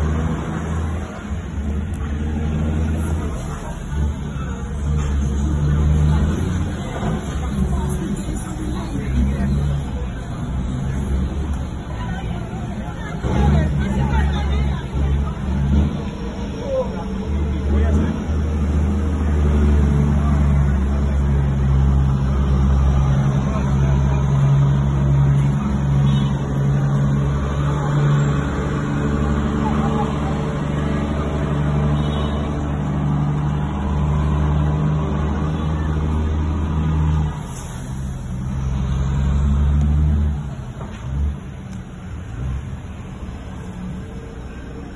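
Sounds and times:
truck diesel engine droning: 0:00.0 - 0:44.9.

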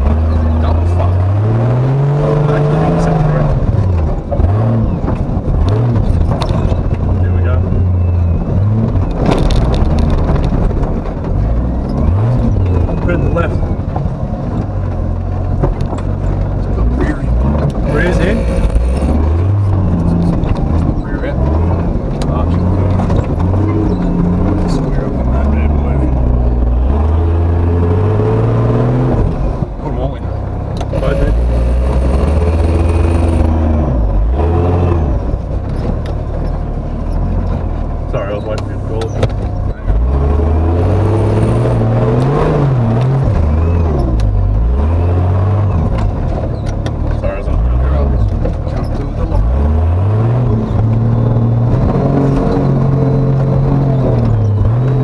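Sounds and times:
truck engine revving under load: 0:00.0 - 0:55.0.

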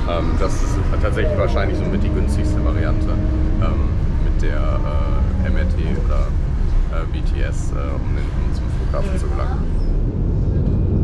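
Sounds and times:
person talking: 0:00.0 - 0:06.3, 0:07.0 - 0:09.7
bus engine rumble: 0:00.0 - 0:11.0.

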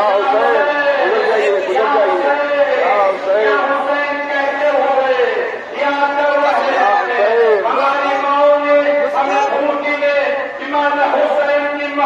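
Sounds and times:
crowd chatter: 0:00.0 - 0:12.0
men chanting loudly: 0:00.0 - 0:12.0.

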